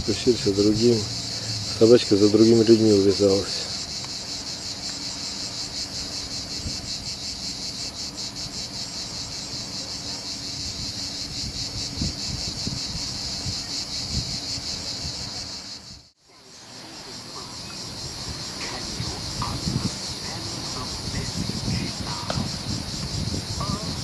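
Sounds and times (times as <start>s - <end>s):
insects chirring: 0.0s - 24.0s.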